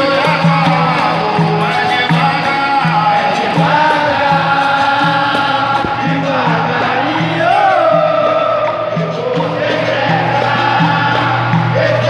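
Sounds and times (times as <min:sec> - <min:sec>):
hand clapping: 0:00.0 - 0:06.1, 0:08.6 - 0:12.0
group singing chorus: 0:00.0 - 0:12.0
hand drum: 0:00.0 - 0:12.0.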